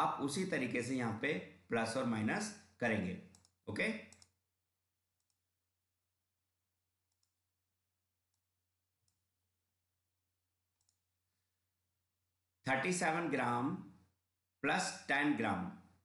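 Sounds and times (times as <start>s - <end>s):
faint computer mouse clicks: 3.3s - 4.4s.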